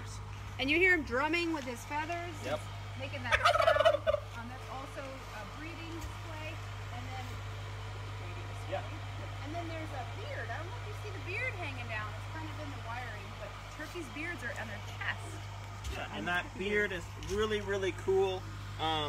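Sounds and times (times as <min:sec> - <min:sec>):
turkey gobbling: 0:03.3 - 0:04.3.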